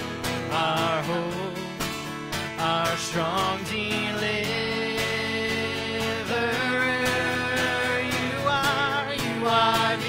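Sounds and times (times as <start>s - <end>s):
guitar accompaniment: 0.0s - 10.0s.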